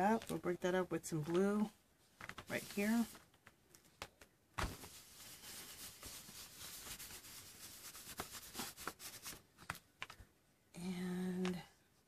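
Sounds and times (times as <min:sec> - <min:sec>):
hand rubbing on paper: 0:02.5 - 0:03.2, 0:04.9 - 0:09.4.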